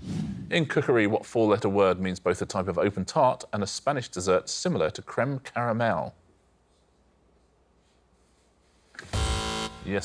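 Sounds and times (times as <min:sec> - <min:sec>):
game show buzzer: 0:09.1 - 0:10.0.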